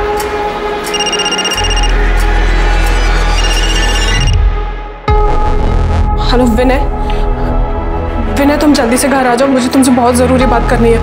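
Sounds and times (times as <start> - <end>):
dark background music: 0.0 - 11.0
mobile phone ringing: 0.9 - 2.0, 3.3 - 4.4.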